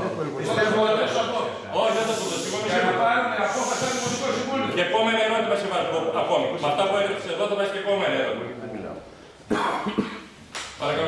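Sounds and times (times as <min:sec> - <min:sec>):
person coughing: 0:09.5 - 0:10.3.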